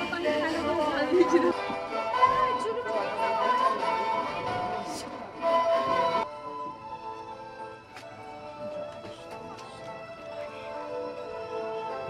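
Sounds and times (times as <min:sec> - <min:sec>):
background instrumental music: 0:00.0 - 0:12.0.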